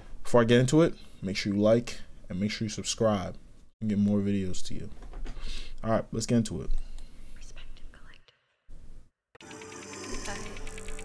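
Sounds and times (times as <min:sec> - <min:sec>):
faint whispering voice: 0:07.3 - 0:08.3.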